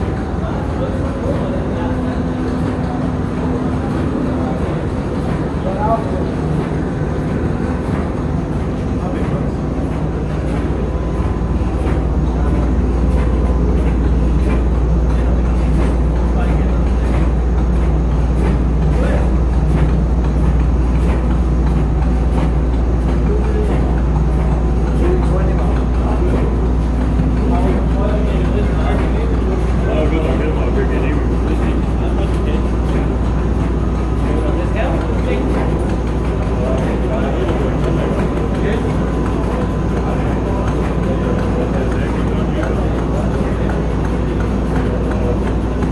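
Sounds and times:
faint murmuring voices: 0.0s - 45.9s
steam engine running: 0.0s - 45.9s.

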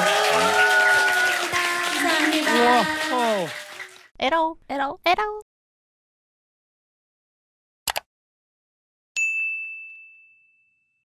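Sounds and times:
bright bell ding: 9.2s - 11.0s.

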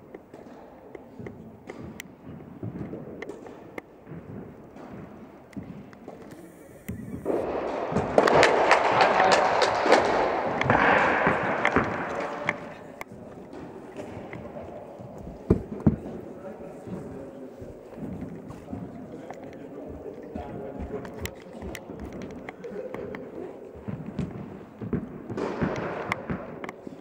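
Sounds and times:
tennis balls knocking: 0.2s - 16.2s
crowd clapping: 7.3s - 13.0s.

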